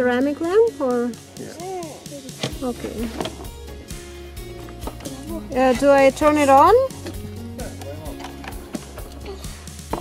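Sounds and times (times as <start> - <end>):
background music with bass notes: 0.0 - 10.0.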